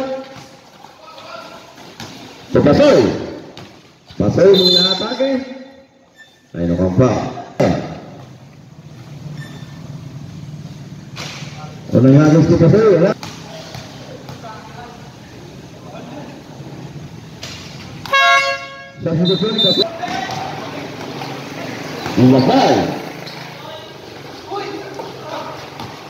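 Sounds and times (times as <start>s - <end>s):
horn buzzing tone: 18.0s - 19.8s
low hubbub of crowd: 19.2s - 26.0s.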